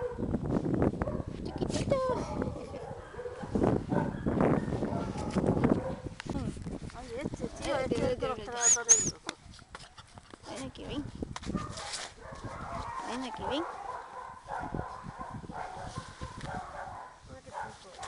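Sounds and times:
dogs barking and yelping: 0:02.2 - 0:06.1, 0:08.6 - 0:09.2, 0:12.2 - 0:17.7.

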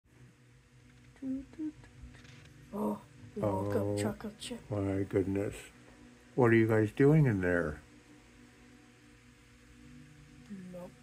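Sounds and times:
faint low hum: 0:00.1 - 0:11.0
person humming hm: 0:01.2 - 0:01.9.

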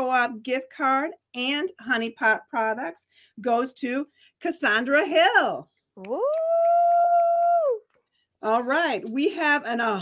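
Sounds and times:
woman's excited ooh: 0:06.0 - 0:07.8.

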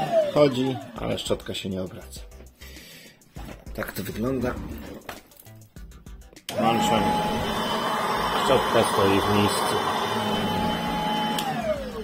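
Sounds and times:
vacuum motor whine: 0:00.0 - 0:01.0, 0:06.5 - 0:12.0.

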